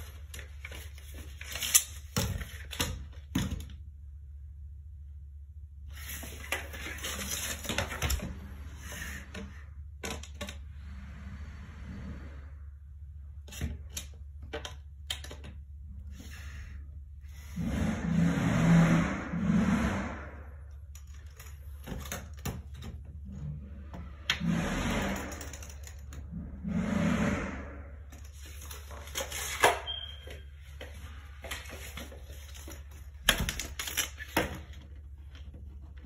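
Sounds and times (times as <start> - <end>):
steady low hum: 0.0 - 29.4.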